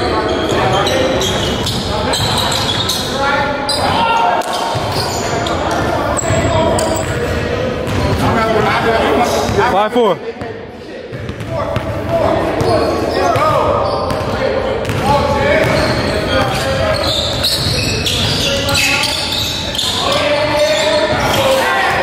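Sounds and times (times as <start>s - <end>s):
players' voices echoing: 0.0s - 22.0s.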